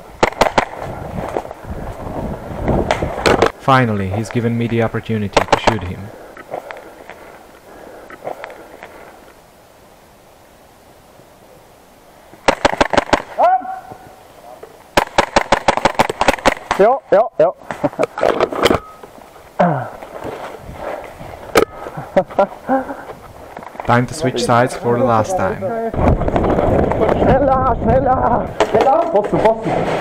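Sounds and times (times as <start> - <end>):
airsoft pistol shots: 0.2 - 0.9, 12.4 - 13.4, 15.0 - 16.9
people shouting: 13.3 - 14.2.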